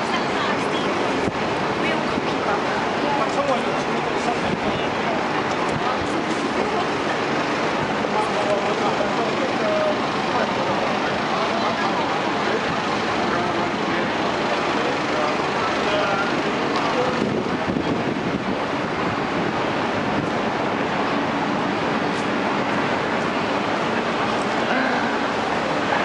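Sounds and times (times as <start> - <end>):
passers-by talking indistinctly: 0.0 - 26.0
traffic noise: 0.0 - 26.0.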